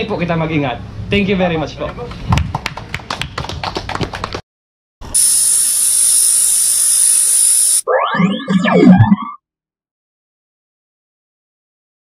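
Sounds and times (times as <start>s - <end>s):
crowd clapping: 2.1s - 4.4s
loud steady hiss: 5.1s - 7.8s
cartoon boings: 5.2s - 9.4s.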